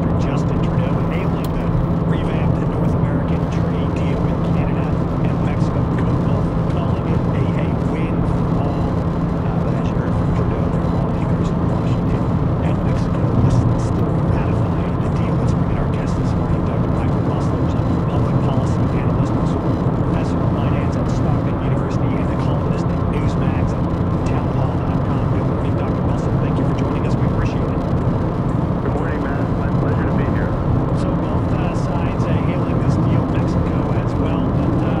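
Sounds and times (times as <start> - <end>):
car road and engine noise: 0.0 - 35.0
faint talk from car radio: 0.0 - 35.0.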